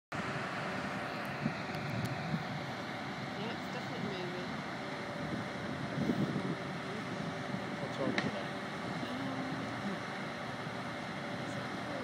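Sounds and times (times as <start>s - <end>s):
distant heavy machinery drone: 0.1s - 12.0s.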